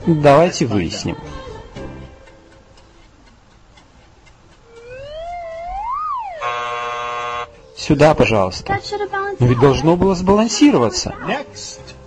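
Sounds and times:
swooping wavering tone: 4.6 - 7.4
harsh buzzer: 6.4 - 7.6.

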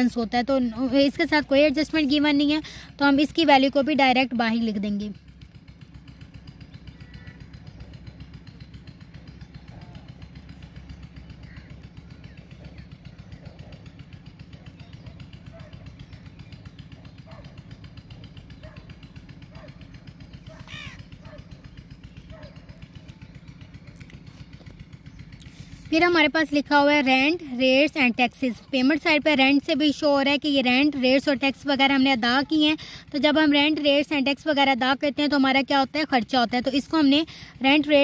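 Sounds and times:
small engine running: 0.0 - 38.0.

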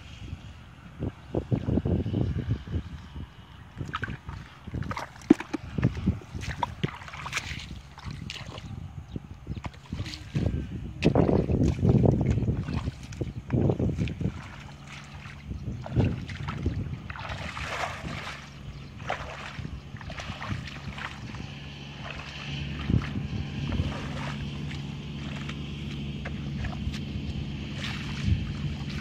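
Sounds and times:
steady low hum: 0.0 - 29.0
footsteps sloshing through muddy water: 3.5 - 29.0.

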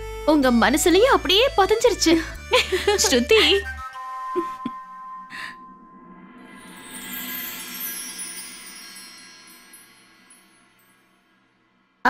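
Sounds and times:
wind chime tones: 6.4 - 11.6.

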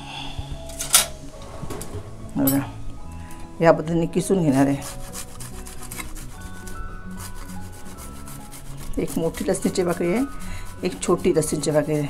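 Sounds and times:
garlic grated on metal grater: 4.8 - 12.0.

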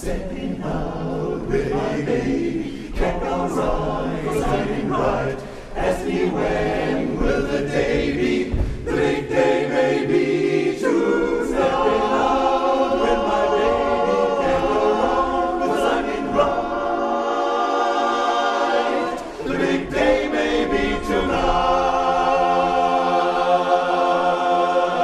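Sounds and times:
male chorus singing a cappella: 0.0 - 25.0.

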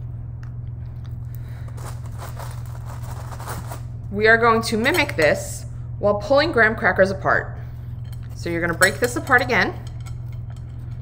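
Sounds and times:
steady low hum: 0.0 - 11.0
crackers crackling and crunching: 1.3 - 3.9.

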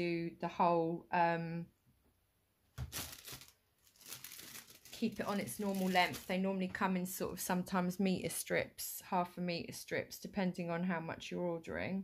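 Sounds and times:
foil rustling with small crackles: 2.8 - 6.8.

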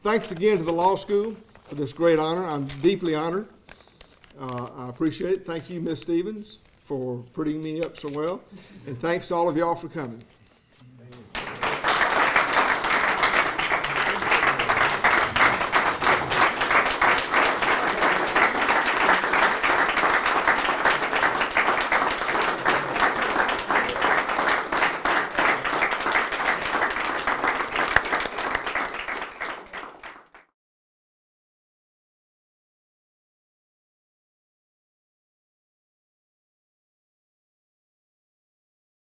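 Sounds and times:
audience applauding: 11.1 - 30.5.

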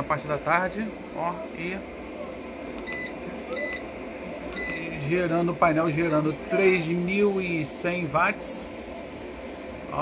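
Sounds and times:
keypad beeps: 2.4 - 3.9, 4.5 - 5.0.

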